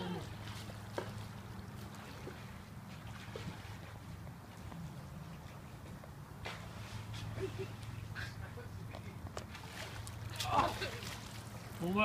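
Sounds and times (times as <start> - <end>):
faint trickling water: 0.0 - 12.0.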